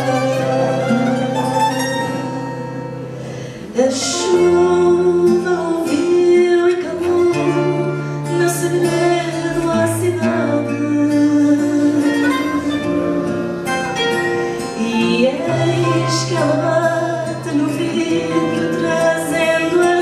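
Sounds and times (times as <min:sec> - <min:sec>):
guitars playing: 0:00.0 - 0:20.0
woman singing: 0:03.7 - 0:12.9, 0:14.6 - 0:20.0.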